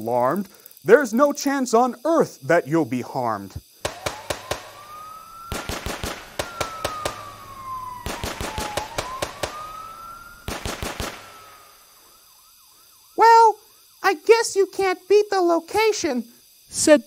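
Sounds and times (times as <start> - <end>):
rapid gunfire: 3.8 - 7.4, 8.0 - 11.7
police siren wailing: 3.9 - 13.6.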